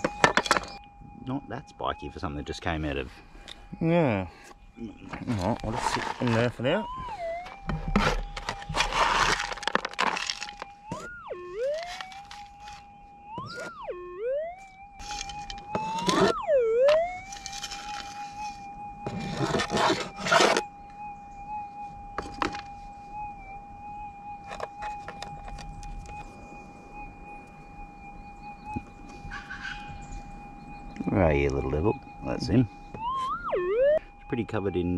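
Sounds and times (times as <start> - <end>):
metal detector target signal: 0.0 - 0.8, 15.0 - 20.7
metal detector threshold tone: 4.8 - 9.2, 10.6 - 20.7, 28.2 - 34.9
gravel rattling in a pan: 5.4 - 6.6, 8.0 - 10.7.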